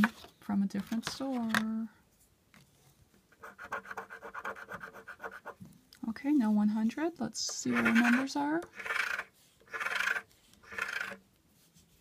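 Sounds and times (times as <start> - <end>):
lottery ticket being scratched: 7.6 - 11.2.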